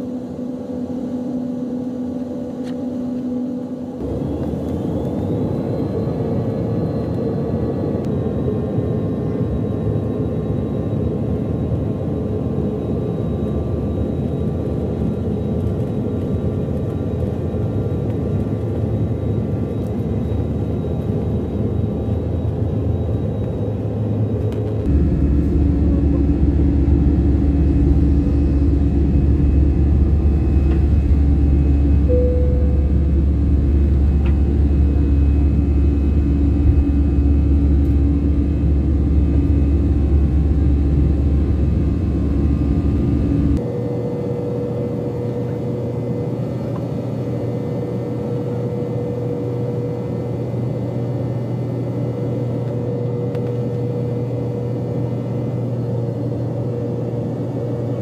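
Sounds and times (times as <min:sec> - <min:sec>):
jet engines rumbling in cabin: 0:00.0 - 0:58.0.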